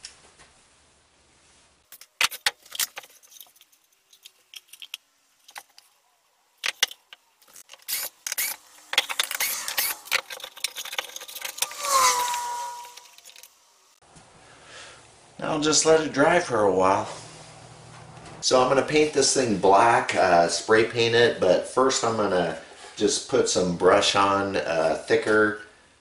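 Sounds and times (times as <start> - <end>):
pneumatic nailer shots: 7.7 - 10.3
cordless drill whining: 7.8 - 10.4.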